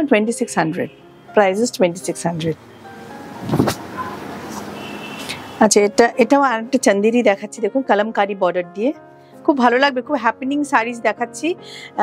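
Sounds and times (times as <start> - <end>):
cloth rustling: 3.4 - 5.3
fabric swish: 3.4 - 5.4.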